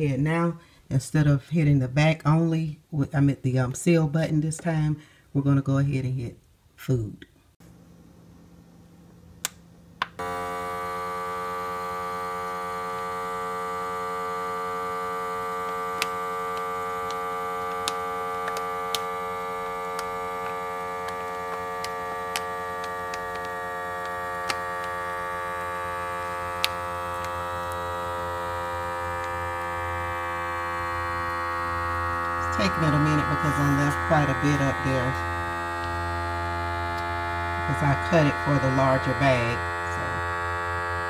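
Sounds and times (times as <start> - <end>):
vacuum sealer pump humming: 7.6 - 41.0
vacuum sealer clicks: 9.4 - 30.2.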